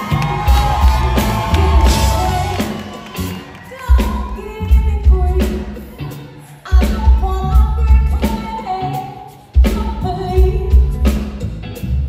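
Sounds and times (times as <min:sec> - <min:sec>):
backing singers: 0:00.0 - 0:04.7
woman singing lead: 0:00.0 - 0:11.4
live band playing: 0:00.0 - 0:12.0.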